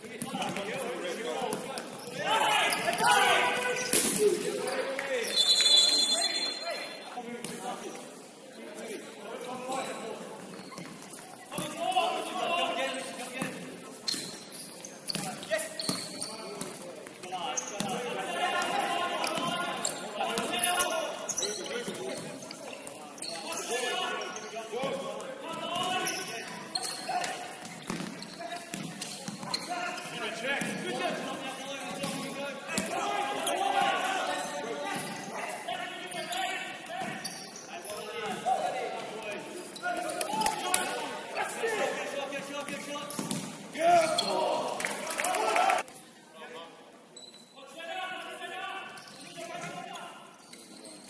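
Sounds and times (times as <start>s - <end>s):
players shouting: 2.2s - 4.6s, 32.8s - 34.7s
ball bouncing on wooden court: 27.2s - 29.5s, 43.1s - 43.6s.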